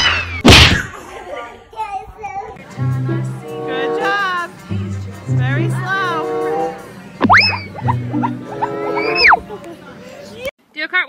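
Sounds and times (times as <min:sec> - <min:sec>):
playful background music: 0:02.6 - 0:09.6
cartoon boing sound effect: 0:07.2 - 0:09.4.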